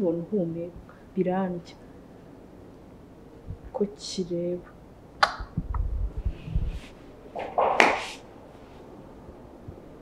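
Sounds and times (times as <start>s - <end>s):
fabric rustling: 6.7s - 8.9s.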